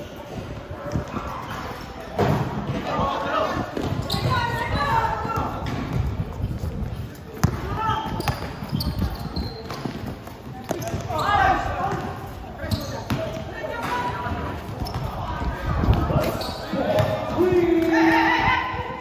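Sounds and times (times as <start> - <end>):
basketball bouncing on hard court: 5.2 - 6.3, 7.3 - 11.2, 12.8 - 13.5
players shouting: 16.2 - 19.0.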